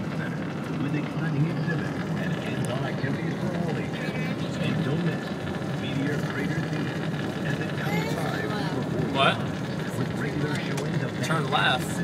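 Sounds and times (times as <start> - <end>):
faint indistinct voices: 0.0 - 12.0
vehicle engine and road drone: 0.0 - 12.0.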